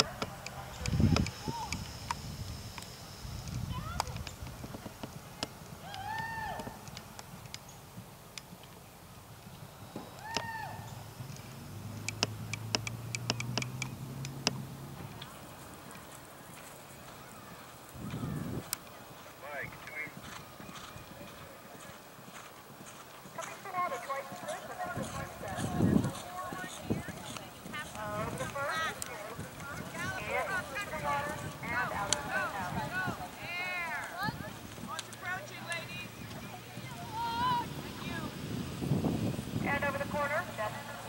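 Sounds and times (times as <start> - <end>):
horse galloping on turf: 3.5 - 9.9, 11.2 - 41.0.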